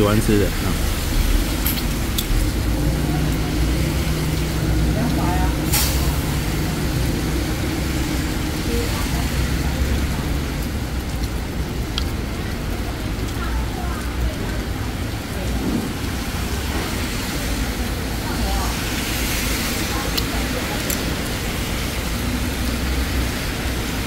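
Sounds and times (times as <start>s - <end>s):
heavy rain: 0.0s - 24.0s
road traffic: 0.0s - 24.0s.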